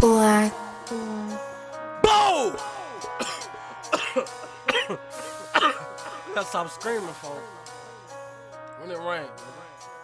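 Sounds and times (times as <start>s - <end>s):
rap beat: 0.0s - 8.3s
man coughing: 3.1s - 6.4s.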